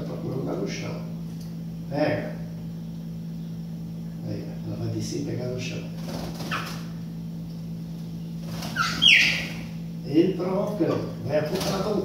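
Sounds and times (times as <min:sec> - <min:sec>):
bird call gliding down: 0:08.7 - 0:09.7.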